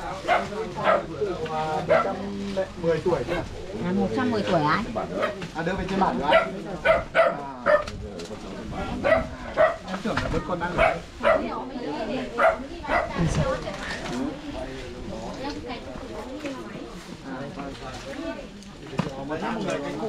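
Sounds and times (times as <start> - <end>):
people's voices: 0.0 - 20.0
dog barking: 0.2 - 1.1, 1.9 - 2.2, 5.0 - 5.4, 6.2 - 7.9, 9.0 - 9.9, 10.7 - 11.6, 12.4 - 13.2.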